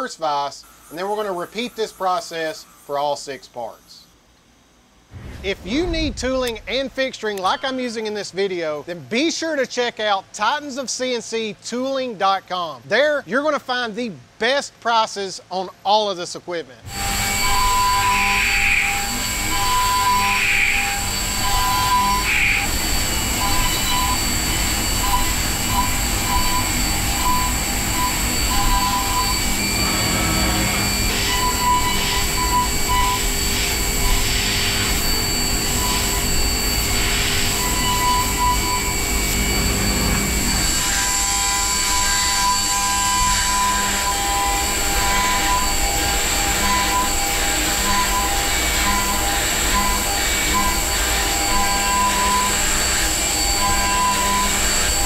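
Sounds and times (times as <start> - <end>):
milling machine high whine: 0.0 - 8.0, 16.8 - 55.0
metal cutting tone: 16.9 - 55.0.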